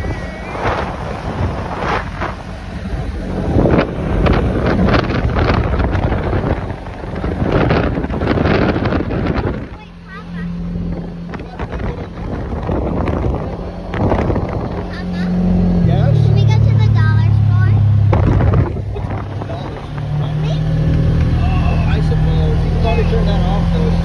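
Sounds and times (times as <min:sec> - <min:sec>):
wind buffeting microphone: 0:00.0 - 0:21.4
vehicle engine and road noise: 0:00.0 - 0:24.0.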